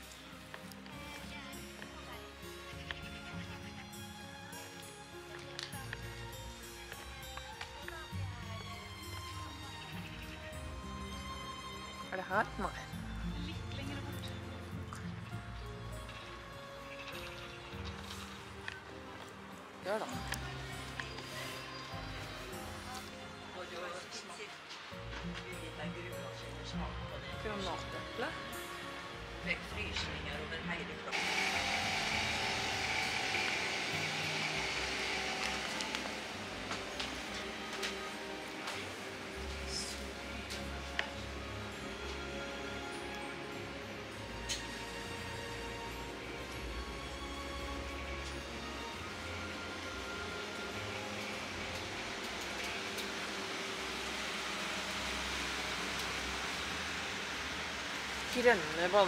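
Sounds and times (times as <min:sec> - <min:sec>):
background music: 0:00.0 - 0:59.0
low refrigeration hum: 0:31.1 - 0:38.4
hiss with high whine: 0:31.2 - 0:40.2
ventilation hiss: 0:47.8 - 0:59.0.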